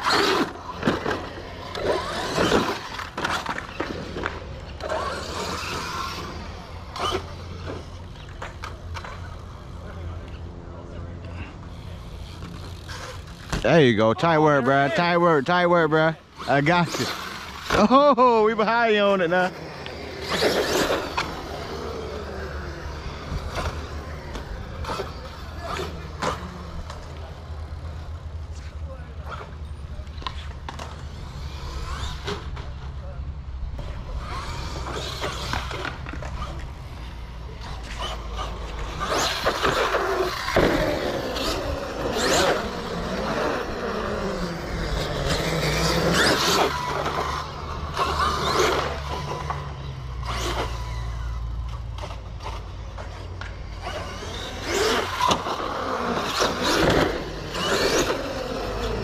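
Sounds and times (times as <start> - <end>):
rc truck motor whine: 0.0 - 13.6, 15.2 - 59.0
tyre noise on concrete: 33.8 - 59.0.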